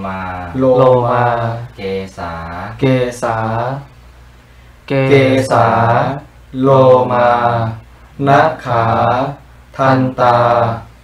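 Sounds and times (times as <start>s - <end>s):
man chanting slowly: 0.0s - 3.9s, 4.9s - 11.0s.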